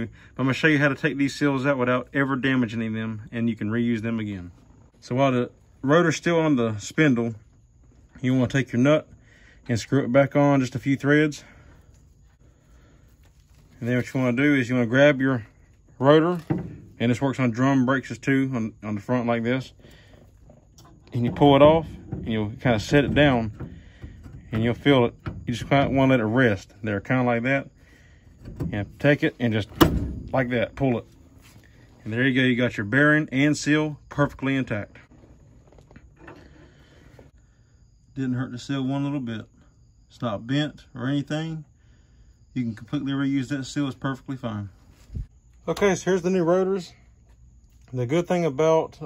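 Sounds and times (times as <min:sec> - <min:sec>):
man speaking: 0:09.7 - 0:11.5, 0:13.8 - 0:19.8, 0:21.1 - 0:23.7, 0:24.5 - 0:27.7, 0:28.6 - 0:31.2, 0:32.0 - 0:35.0.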